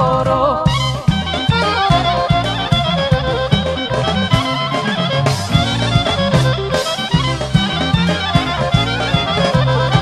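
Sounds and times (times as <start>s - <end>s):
clarinet runs: 0.7s - 10.0s
steady beat: 1.0s - 10.0s.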